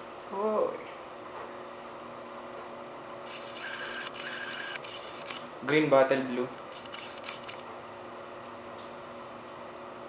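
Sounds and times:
steady low hum: 0.0 - 10.0
small motor whirring: 3.2 - 5.5, 6.7 - 7.6
tiny clicks: 6.8 - 7.6.

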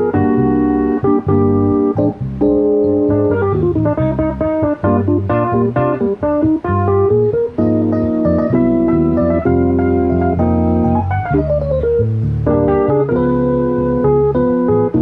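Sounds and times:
electric bass guitar: 0.0 - 15.0
keyboard chords: 0.0 - 15.0.

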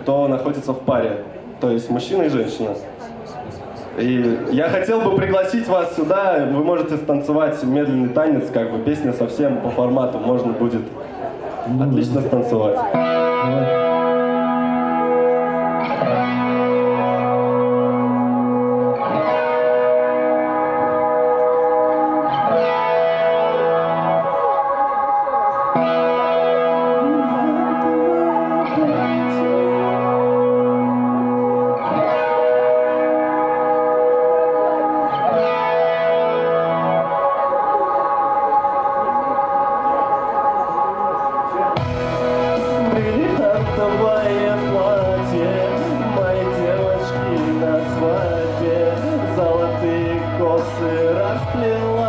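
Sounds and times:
slow echoing instrumental chords: 12.8 - 52.0.

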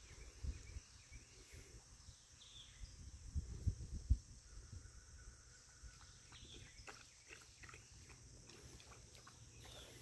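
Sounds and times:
animals lapping water: 5.9 - 10.0.

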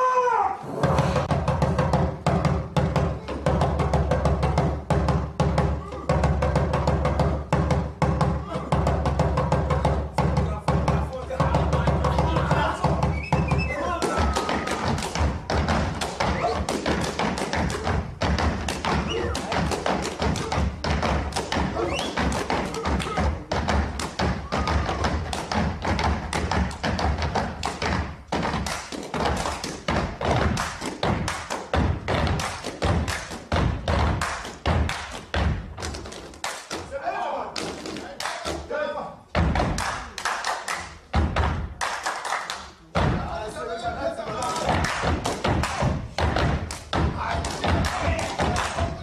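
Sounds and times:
rubber boots stamping and slapping: 12.6 - 36.2.

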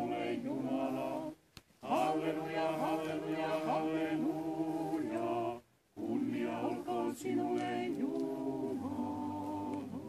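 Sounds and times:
a cappella group chant: 0.0 - 10.0.

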